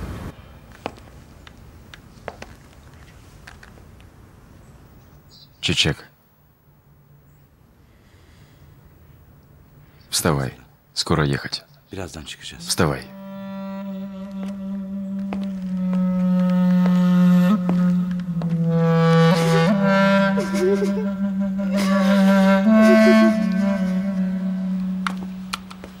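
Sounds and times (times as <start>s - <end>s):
slow melody over low drone: 12.6s - 26.0s.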